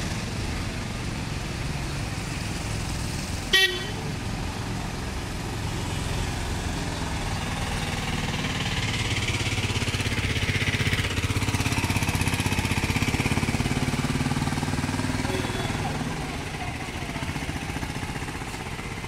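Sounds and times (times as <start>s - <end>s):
auto-rickshaw engine puttering: 0.0s - 19.0s
idling road traffic: 0.0s - 19.0s
vehicle horn toot: 3.5s - 4.0s, 15.2s - 15.9s.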